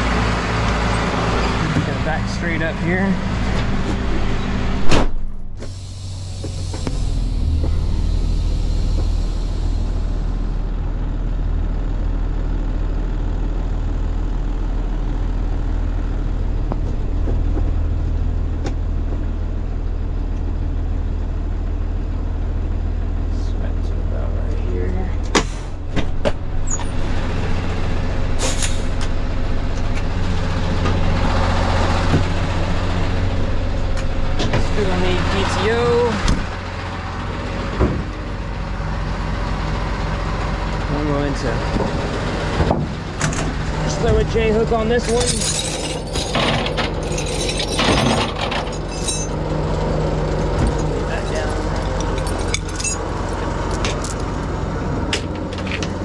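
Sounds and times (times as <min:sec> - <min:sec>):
diesel truck engine running: 0:00.0 - 0:56.0
short hiss of air: 0:05.6 - 0:10.0, 0:28.4 - 0:29.0.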